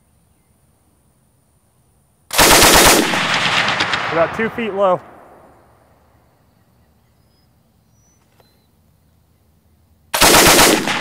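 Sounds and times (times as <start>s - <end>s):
machine gun burst echo: 2.3s - 5.5s, 10.2s - 11.0s
faint bird chirps: 5.5s - 9.9s.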